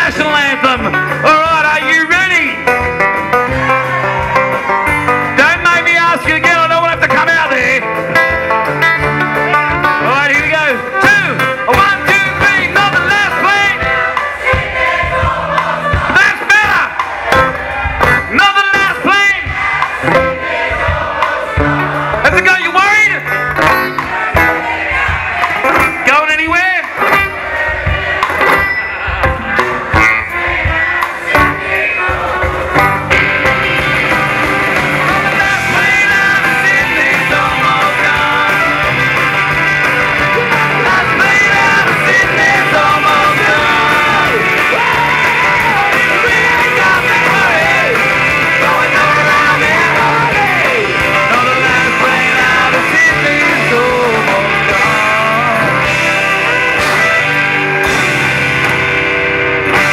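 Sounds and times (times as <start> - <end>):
live rock band playing: 0.0 - 59.9.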